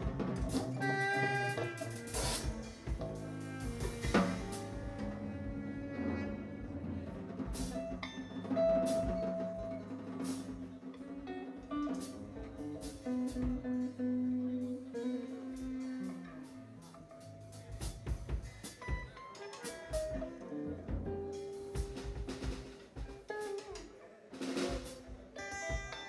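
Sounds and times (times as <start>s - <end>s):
saxophone: 0.0s - 9.9s, 11.0s - 22.5s
bouzouki: 0.0s - 26.0s
drum kit: 0.0s - 26.0s
electric guitar: 0.0s - 26.0s.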